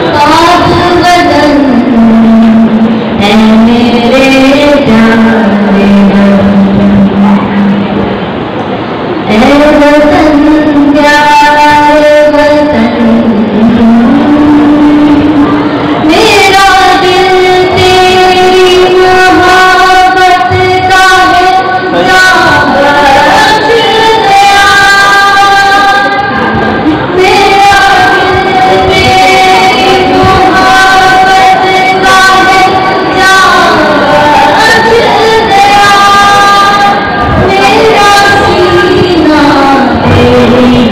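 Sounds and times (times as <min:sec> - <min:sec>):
woman singing: 0:00.0 - 0:07.7, 0:09.3 - 0:40.9.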